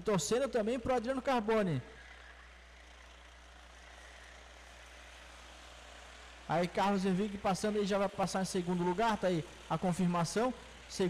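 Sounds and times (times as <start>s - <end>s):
racing kart engines droning: 0.0s - 11.0s.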